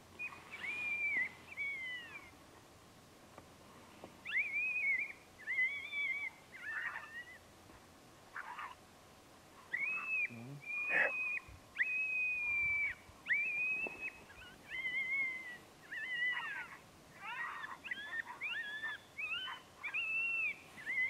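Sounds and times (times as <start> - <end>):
coyote yips and howls: 0.2 - 2.4, 4.2 - 7.5, 8.3 - 8.8, 9.6 - 21.0.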